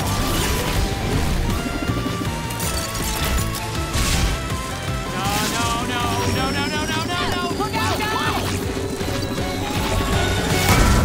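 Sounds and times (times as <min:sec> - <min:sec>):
cartoon action music: 0:00.0 - 0:11.0.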